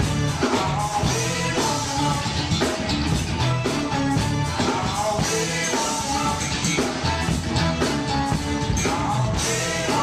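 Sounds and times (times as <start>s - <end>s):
bass guitar: 0.0s - 10.0s
drum kit: 0.0s - 10.0s
electric guitar: 0.0s - 10.0s
keyboards: 0.0s - 10.0s.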